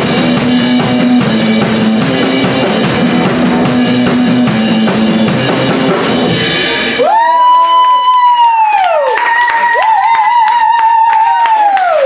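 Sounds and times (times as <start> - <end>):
live rock band playing: 0.0 - 8.0
audience cheering whoop: 6.8 - 12.0
scattered claps: 7.6 - 12.0.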